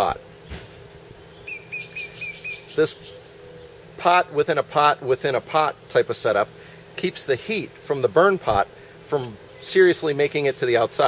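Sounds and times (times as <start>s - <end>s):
small bird chirping: 1.2s - 3.8s.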